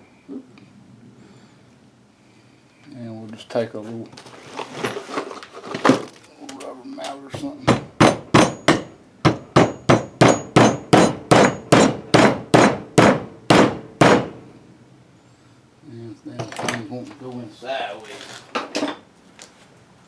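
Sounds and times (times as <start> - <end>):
mallet tapping metal: 7.7 - 14.2.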